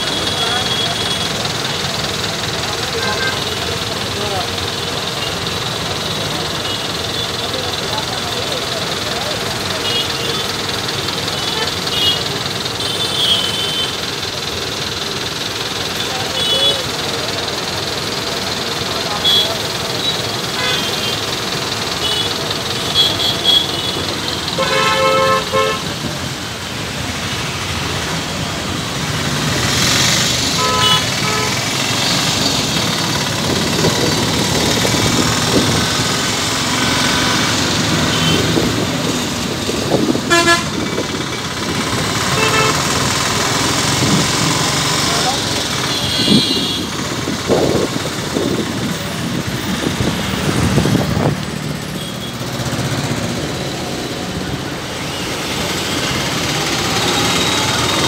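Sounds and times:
engine and tyre noise: 0:00.0 - 0:58.0
vehicle horn toots: 0:22.0 - 0:25.9, 0:30.5 - 0:31.6, 0:38.0 - 0:38.6, 0:40.2 - 0:40.9, 0:42.3 - 0:43.0, 0:45.8 - 0:46.9.

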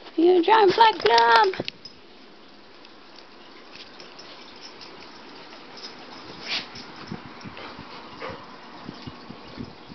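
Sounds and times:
dog noises: 0:03.5 - 0:09.8
soft thuds of dogs moving: 0:03.6 - 0:09.9.

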